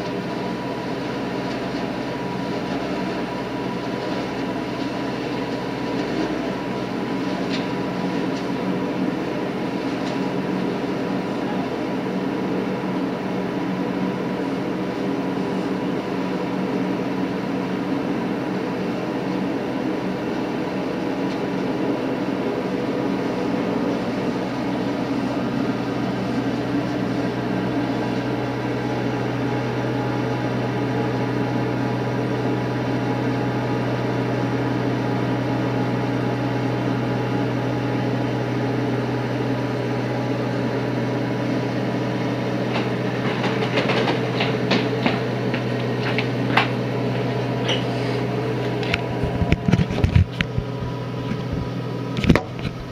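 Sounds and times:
leaf vacuum engine and fan running: 0.0 - 52.9.

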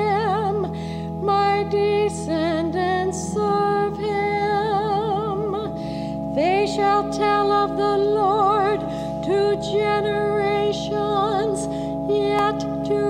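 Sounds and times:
organ chords: 0.0 - 13.0
woman singing with vibrato: 0.0 - 13.0.

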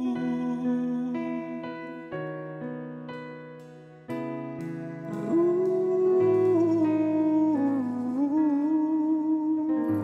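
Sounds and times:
person humming a held melody: 0.0 - 1.6, 4.6 - 10.0
soft instrumental accompaniment: 0.0 - 10.0.

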